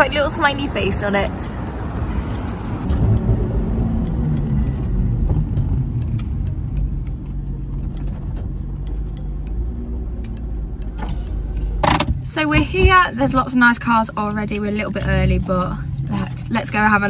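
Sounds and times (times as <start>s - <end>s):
car engine and road noise: 0.0s - 17.0s.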